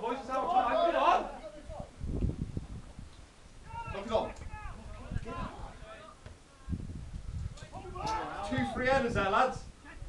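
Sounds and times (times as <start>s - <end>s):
player shouting: 0.1s - 1.7s, 3.6s - 6.7s.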